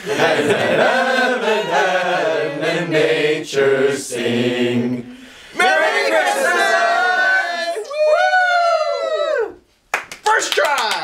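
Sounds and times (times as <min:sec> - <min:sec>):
people cheering woo: 0:06.5 - 0:09.6.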